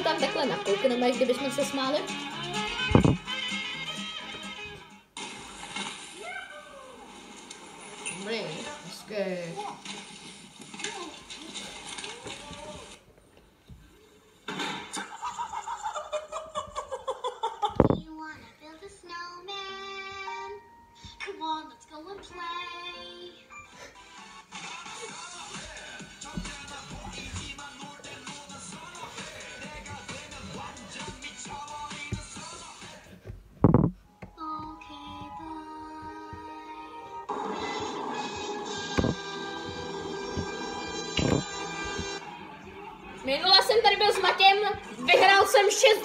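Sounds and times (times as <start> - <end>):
voices from video clips: 0.0 - 2.2, 42.4 - 46.0
music from video clips: 0.0 - 6.1, 20.4 - 45.1.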